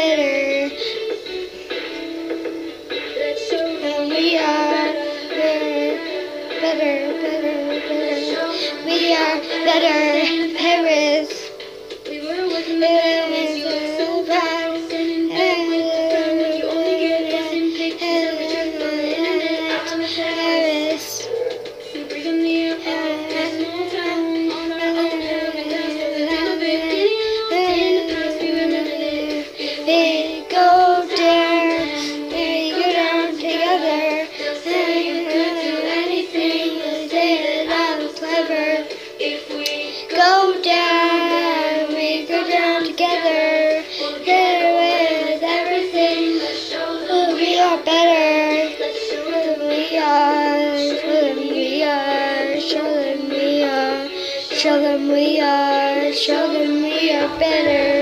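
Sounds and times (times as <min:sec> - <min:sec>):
girl singing: 0:00.0 - 0:02.2, 0:02.9 - 0:58.0.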